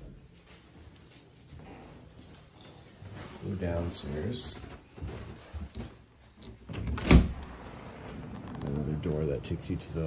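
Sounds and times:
door opening: 6.4 - 8.9.

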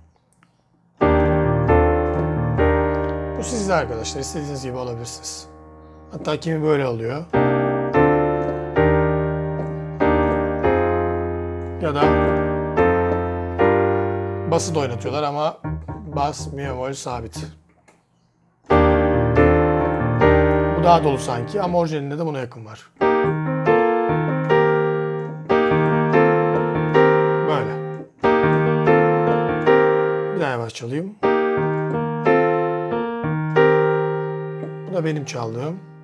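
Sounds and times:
piano chords ringing: 0.0 - 17.7, 18.4 - 36.0.

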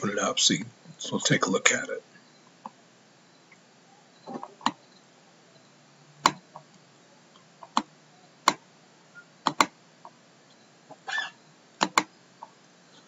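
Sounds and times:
computer mouse clicks: 9.4 - 9.7, 11.8 - 12.1.

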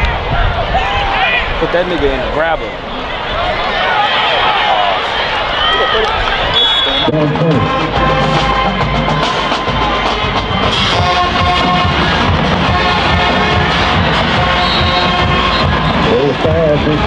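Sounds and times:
music with drum beat: 7.2 - 17.0.

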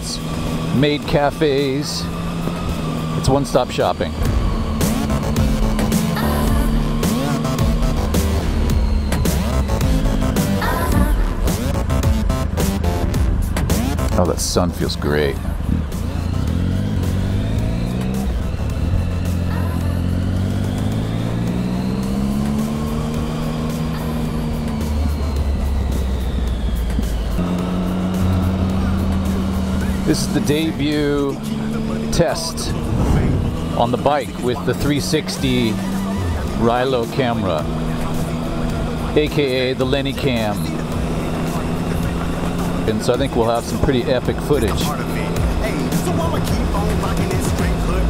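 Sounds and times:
motorcycle engine accelerating: 0.0 - 48.0
wind and road noise: 0.0 - 48.0.

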